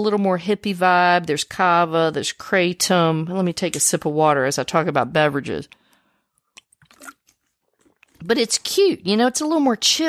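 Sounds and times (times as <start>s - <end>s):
person sipping and swallowing water: 5.7s - 8.2s.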